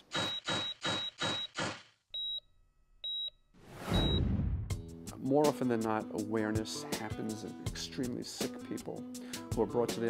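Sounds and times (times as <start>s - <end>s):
whoosh: 3.6s - 4.8s
patient monitor beeps: 4.0s - 4.3s.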